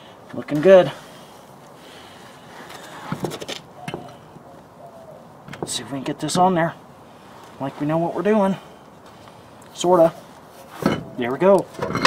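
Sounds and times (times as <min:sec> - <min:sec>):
steel wheel rim clinking on studs: 0:10.8 - 0:12.0.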